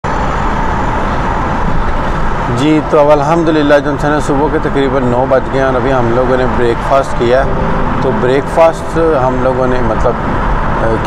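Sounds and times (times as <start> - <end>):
vehicle cabin hum and hiss: 0.1 - 11.0.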